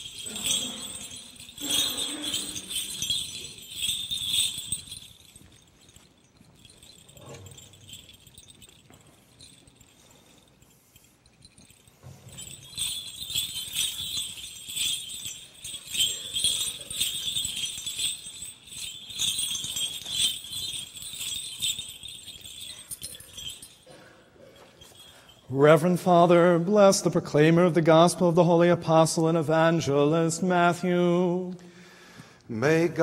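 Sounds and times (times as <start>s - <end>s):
censer bells jingling: 0.0s - 31.4s.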